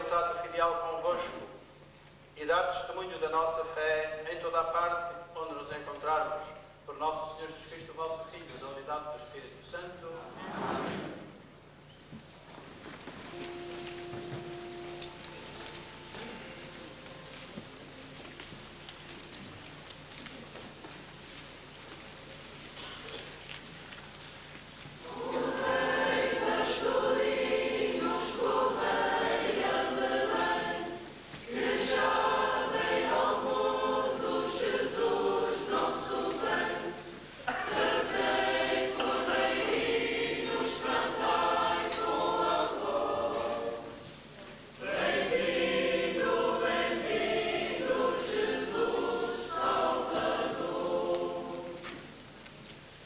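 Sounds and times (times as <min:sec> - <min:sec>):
church choir singing: 0:02.5 - 0:11.4, 0:13.3 - 0:18.3, 0:25.0 - 0:52.2.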